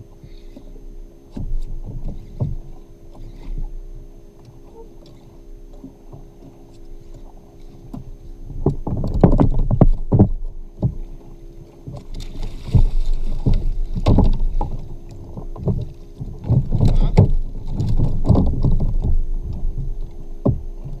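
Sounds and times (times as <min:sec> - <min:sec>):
water splashing: 0:10.8 - 0:19.8
knocks against plastic kayak: 0:12.6 - 0:19.2.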